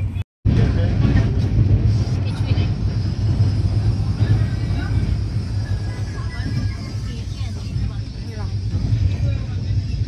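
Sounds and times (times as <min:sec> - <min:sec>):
train coach rumbling at speed: 0:00.0 - 0:10.0.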